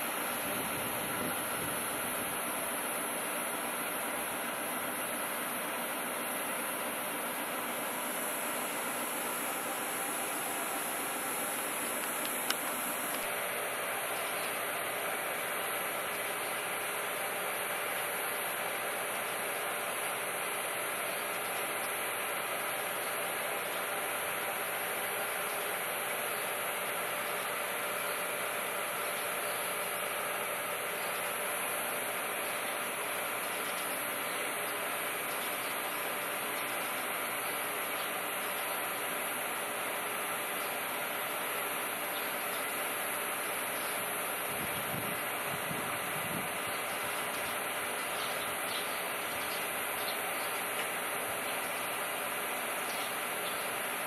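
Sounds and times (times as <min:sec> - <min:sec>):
electric train humming and hissing: 0:00.0 - 0:54.0.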